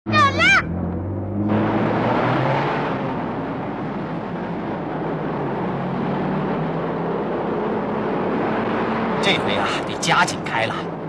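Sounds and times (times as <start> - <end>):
minivan engine and road noise: 0.1 - 11.0.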